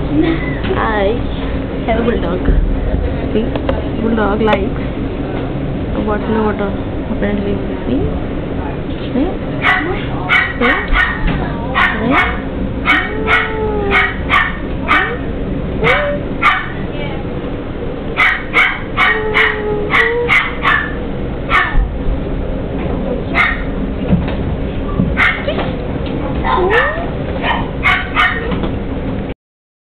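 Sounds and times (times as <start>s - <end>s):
puppies yapping: 9.6s - 16.9s, 18.1s - 21.9s, 23.3s - 23.8s, 25.1s - 25.6s, 26.4s - 28.6s
puppies whining: 11.8s - 16.8s, 18.2s - 21.9s.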